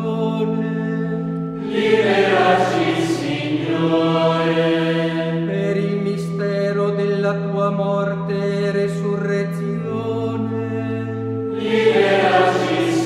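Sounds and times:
choir chanting: 0:01.6 - 0:05.7, 0:11.5 - 0:13.0.

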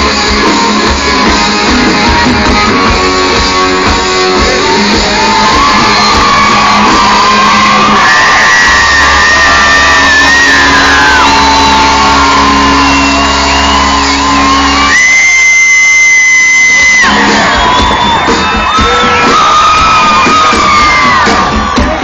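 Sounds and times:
live rock band playing loud: 0:00.0 - 0:22.0
audience shouting and whooping: 0:00.4 - 0:22.0.

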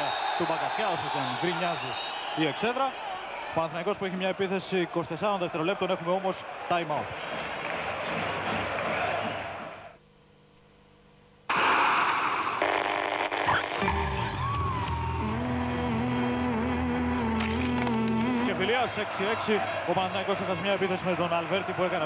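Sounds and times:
arena crowd noise: 0:00.0 - 0:10.0, 0:17.5 - 0:22.0.

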